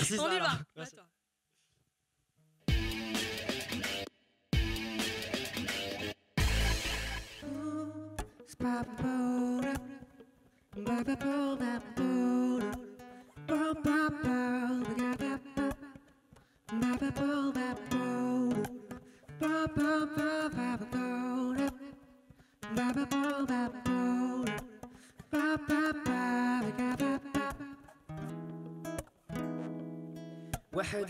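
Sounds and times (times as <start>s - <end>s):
classical guitar: 16.7s - 22.0s, 22.6s - 31.0s
plucked lute: 22.7s - 30.8s.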